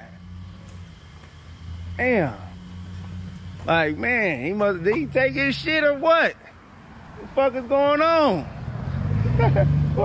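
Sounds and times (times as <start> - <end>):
car engine running: 0.0 - 6.3.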